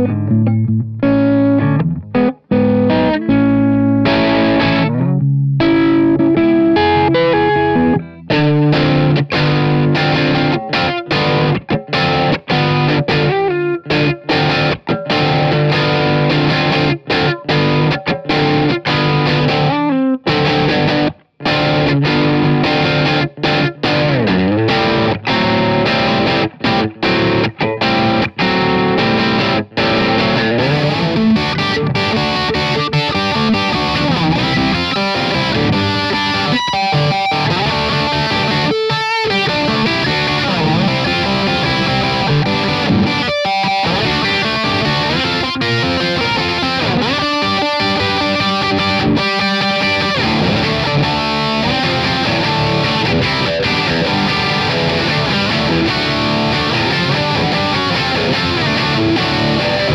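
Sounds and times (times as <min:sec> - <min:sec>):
distorted electric guitar riffs: 0:00.0 - 0:59.9.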